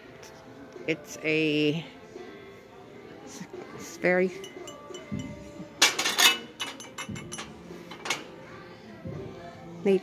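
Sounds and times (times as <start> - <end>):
glassware clinking: 4.4 - 8.2.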